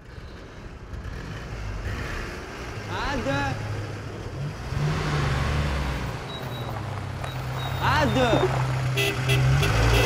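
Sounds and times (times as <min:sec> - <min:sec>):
road traffic noise: 0:00.0 - 0:10.0
vehicle engine humming: 0:00.0 - 0:10.0.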